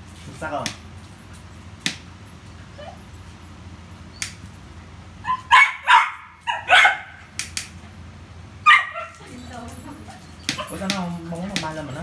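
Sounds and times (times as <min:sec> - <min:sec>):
dog barking: 0:05.2 - 0:07.3, 0:08.6 - 0:09.2.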